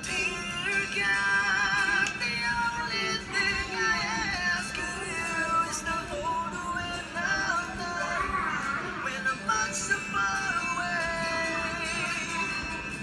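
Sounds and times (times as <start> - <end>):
acoustic guitar: 0.0 - 13.0.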